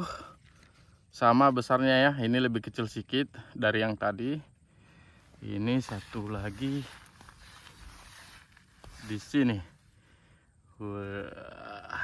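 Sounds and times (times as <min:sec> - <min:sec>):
man's wordless vocal tone: 0:10.7 - 0:12.0.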